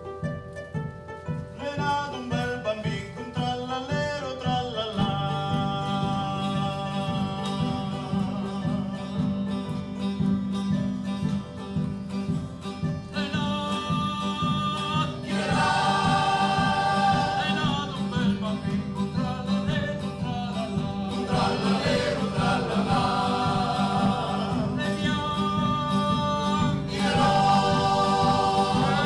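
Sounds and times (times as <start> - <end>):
acoustic guitars: 0.0 - 29.0
keyboard: 0.0 - 29.0
mandolin: 0.0 - 29.0
male choir singing in harmony: 4.6 - 9.4, 13.2 - 19.8, 20.4 - 29.0.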